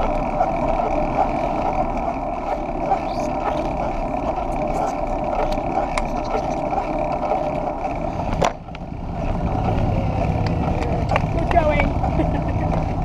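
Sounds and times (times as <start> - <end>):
wind and road noise: 0.0 - 13.0.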